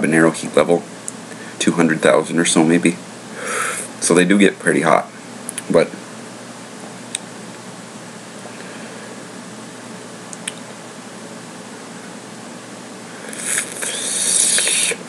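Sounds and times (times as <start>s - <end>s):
background hiss: 0.0s - 15.0s
person breathing hard through mouth: 3.3s - 4.0s, 13.1s - 15.0s
mouth clicks: 10.3s - 10.7s, 13.3s - 15.0s.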